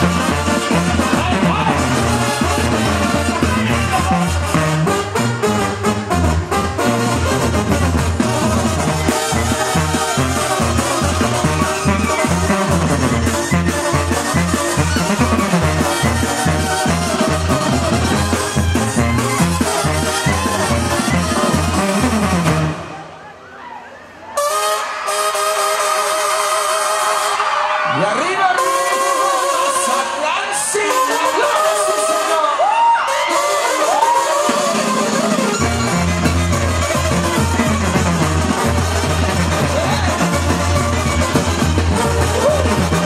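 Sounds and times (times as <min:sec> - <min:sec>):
tuba bass line: 0:00.0 - 0:23.0, 0:33.4 - 0:43.0
brass band playing: 0:00.0 - 0:23.3, 0:24.2 - 0:43.0.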